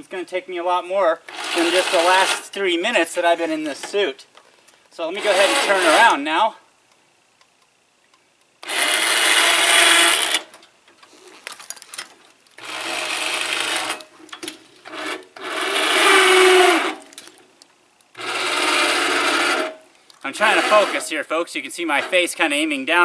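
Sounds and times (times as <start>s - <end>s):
electric winch motors whirring: 1.3s - 2.5s, 5.2s - 6.2s, 8.6s - 10.5s, 12.6s - 14.1s, 14.8s - 17.2s, 18.2s - 21.2s.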